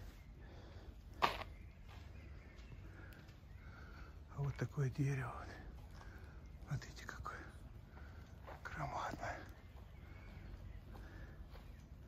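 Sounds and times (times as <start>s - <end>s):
half-whispered speech: 6.6s - 7.6s, 8.5s - 9.6s.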